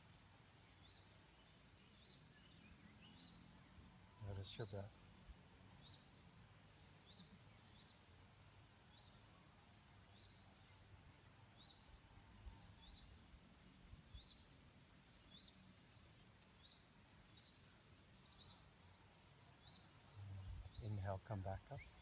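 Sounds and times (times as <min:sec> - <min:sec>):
faint bird chirping: 0:00.0 - 0:22.0.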